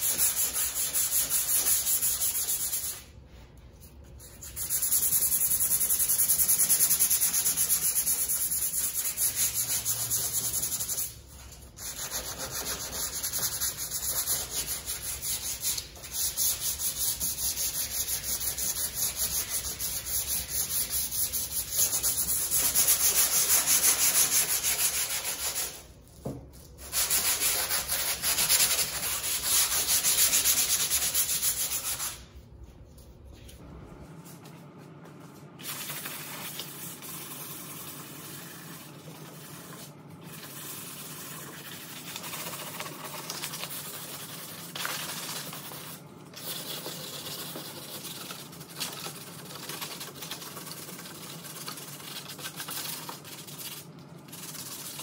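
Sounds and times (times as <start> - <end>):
sanding sponge rubbing fiberglass: 0.0 - 3.1, 4.2 - 11.2, 11.8 - 25.9, 26.8 - 32.2.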